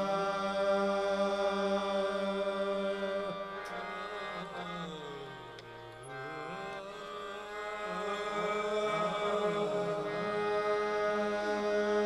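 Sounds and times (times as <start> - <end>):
harmonium held chord: 0.0 - 12.0.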